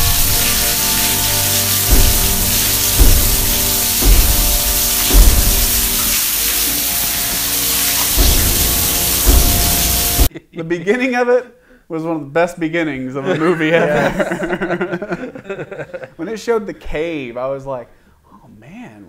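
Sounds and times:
film soundtrack music: 0.0s - 10.3s
low thuds: 0.0s - 10.3s
steady hiss: 0.0s - 10.3s.

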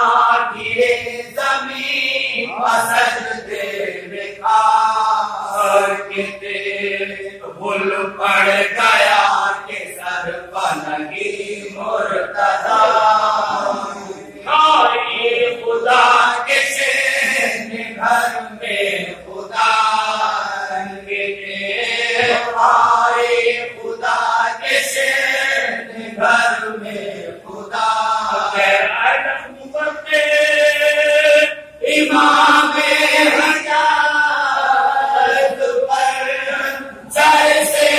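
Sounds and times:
men chanting: 0.0s - 37.9s.

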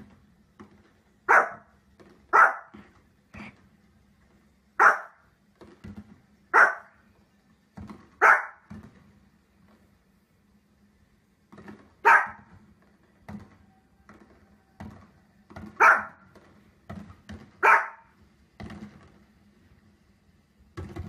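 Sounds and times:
small dog barking sharply: 1.3s - 1.7s, 2.3s - 2.8s, 4.8s - 5.2s, 6.6s - 6.9s, 8.2s - 8.7s, 12.0s - 12.5s, 15.8s - 16.2s, 17.6s - 18.1s.

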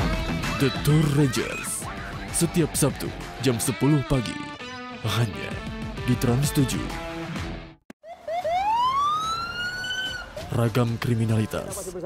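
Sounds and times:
police siren yelping and wailing: 8.0s - 10.5s.

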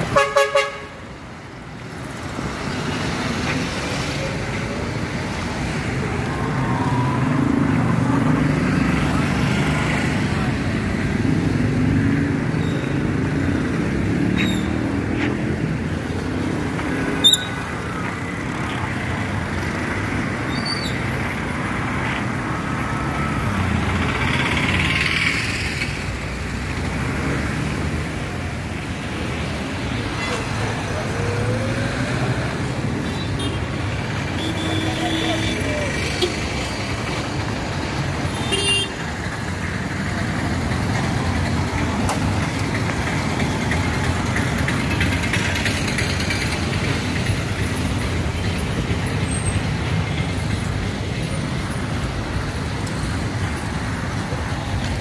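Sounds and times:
traffic driving past: 0.0s - 55.0s
voices of passers-by: 0.0s - 55.0s.

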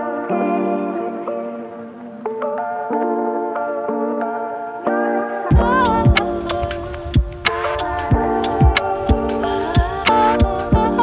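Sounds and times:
background music with deep thumps: 5.5s - 11.0s.

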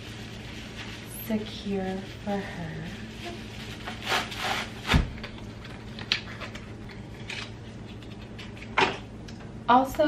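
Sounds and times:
rustling and rubbing packaging: 0.0s - 8.8s.

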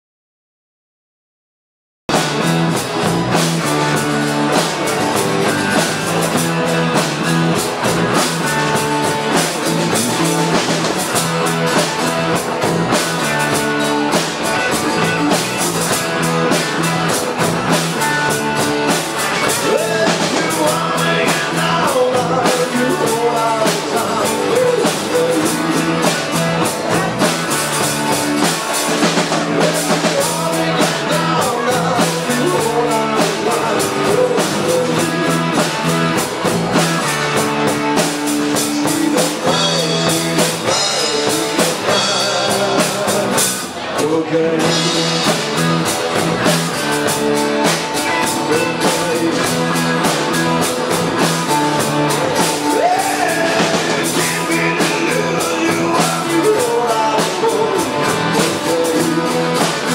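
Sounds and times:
live rock band playing: 2.1s - 59.9s
lead vocal singing: 8.4s - 45.9s, 47.2s - 59.9s.

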